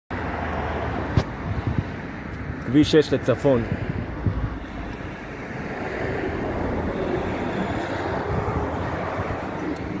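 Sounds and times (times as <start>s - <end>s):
highway traffic rumble: 0.1s - 10.0s
wind buffeting microphone: 1.0s - 2.7s, 3.5s - 10.0s.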